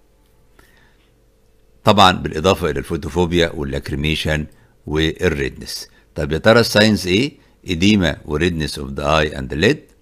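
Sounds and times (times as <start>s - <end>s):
thin steady hum: 0.0s - 10.0s
person speaking: 1.8s - 10.0s.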